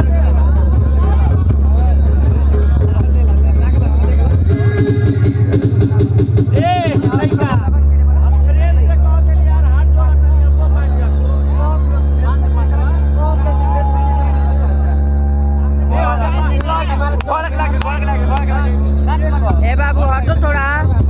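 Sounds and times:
indistinct voices talking: 0:00.0 - 0:21.0
low engine-like drone: 0:07.6 - 0:21.0.

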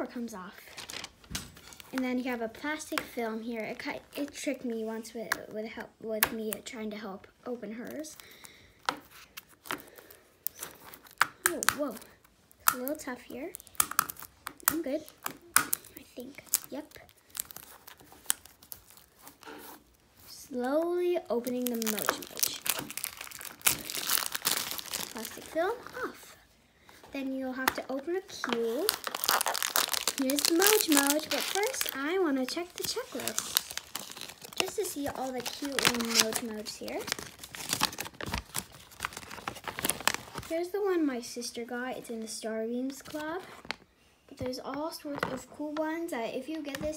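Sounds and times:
paper crackling: 0:00.5 - 0:04.4, 0:07.9 - 0:26.4, 0:27.2 - 0:40.6
plastic film crinkling: 0:00.5 - 0:04.5, 0:07.8 - 0:26.4, 0:27.0 - 0:40.6, 0:43.0 - 0:43.8.

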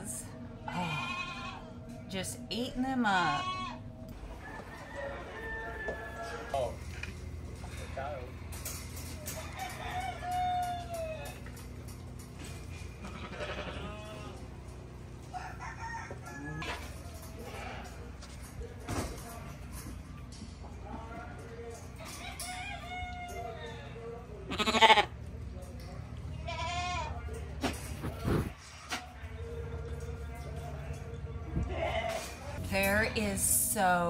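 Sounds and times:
rooster crowing: 0:04.3 - 0:06.6, 0:09.2 - 0:11.5, 0:15.3 - 0:16.7, 0:22.2 - 0:23.6.

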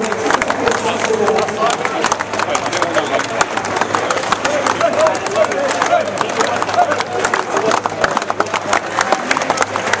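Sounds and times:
group clapping: 0:00.0 - 0:10.0
voices: 0:00.0 - 0:10.0.

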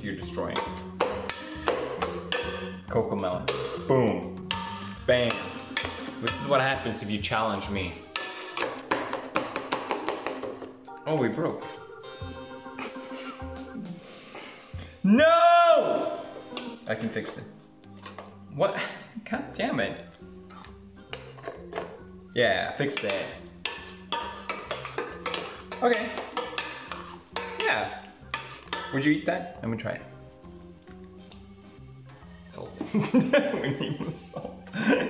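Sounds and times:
utensil knocking against metal pot: 0:00.5 - 0:02.7, 0:03.4 - 0:06.6, 0:08.1 - 0:10.7, 0:22.9 - 0:28.9
metal utensil clinking on pot: 0:22.9 - 0:29.0.

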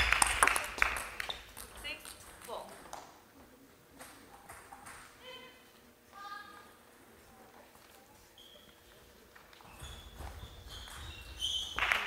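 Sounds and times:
shoe squeak on floor: 0:08.2 - 0:09.0, 0:09.6 - 0:12.0.

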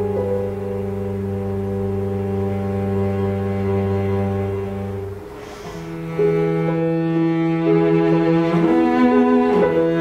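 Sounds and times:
bowed cello note: 0:00.0 - 0:10.0
clarinet cello and piano chord: 0:00.0 - 0:10.0.

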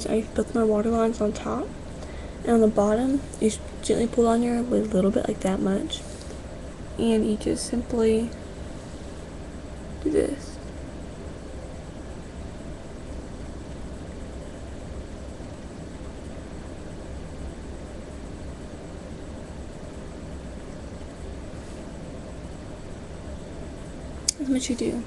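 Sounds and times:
low hum: 0:00.0 - 0:25.0
steady hiss: 0:00.0 - 0:25.0.

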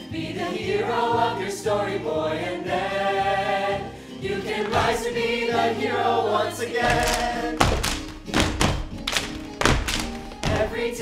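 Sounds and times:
percussive thumps and hits: 0:04.7 - 0:05.1, 0:06.8 - 0:10.8.

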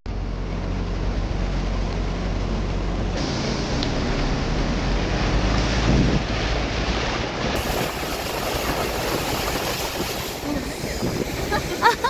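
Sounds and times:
car road and wind noise: 0:00.0 - 0:12.0
fast river rushing: 0:04.5 - 0:12.0.

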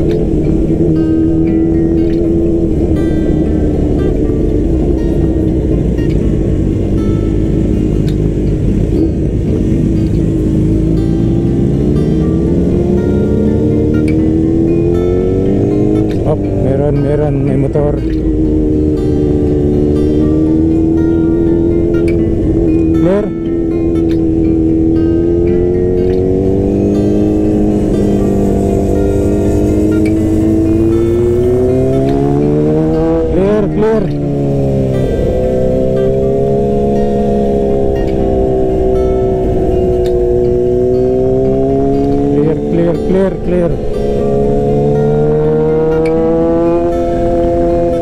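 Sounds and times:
motorcycle engine running: 0:00.0 - 0:48.0
wind and road rumble: 0:00.0 - 0:48.0.

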